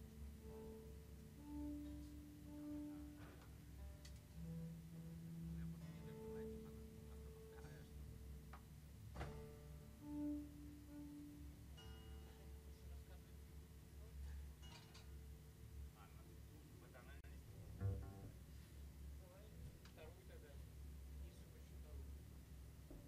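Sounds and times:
double bass long notes: 0.0 - 8.3, 17.5 - 18.7.

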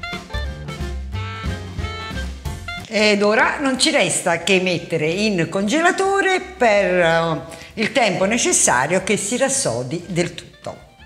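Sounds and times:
upbeat swing jazz music: 0.0 - 4.0.

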